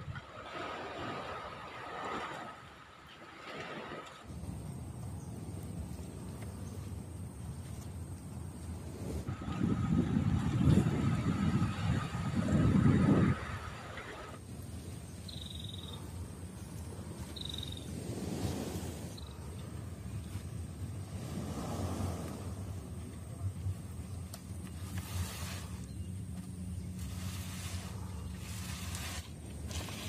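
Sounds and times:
wind buffeting microphone: 0:08.7 - 0:15.2.

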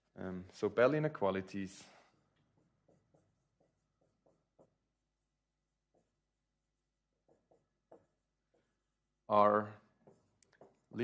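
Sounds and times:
marker squeaking on whiteboard: 0:02.2 - 0:11.0.

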